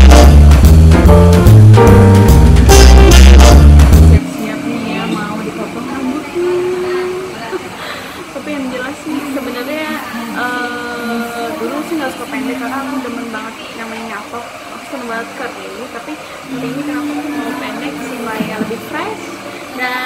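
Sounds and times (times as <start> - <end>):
indistinct voices talking: 2.8 - 20.0
steady background hum: 4.2 - 20.0.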